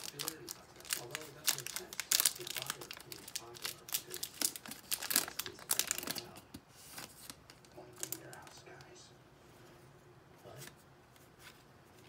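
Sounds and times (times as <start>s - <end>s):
foil wrapper crinkling and tearing: 0.0s - 8.6s.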